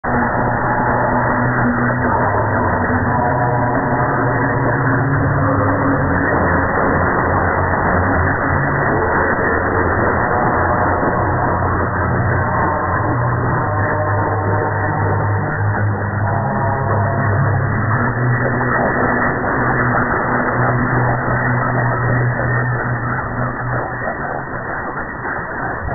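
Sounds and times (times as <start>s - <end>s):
muffled radio music: 5.5s - 25.9s
radio static: 5.6s - 25.9s.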